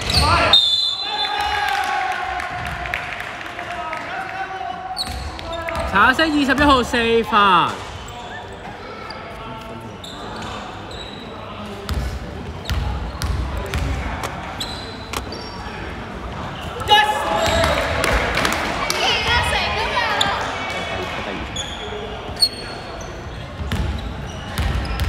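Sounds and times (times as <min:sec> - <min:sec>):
people's voices overlapping: 0:04.0 - 0:23.9.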